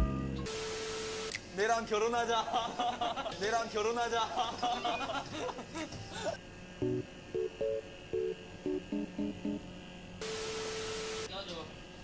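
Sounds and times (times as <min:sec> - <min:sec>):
hiss over steady tone: 0:00.5 - 0:01.4, 0:06.4 - 0:11.6
intro jingle notes: 0:06.8 - 0:09.6.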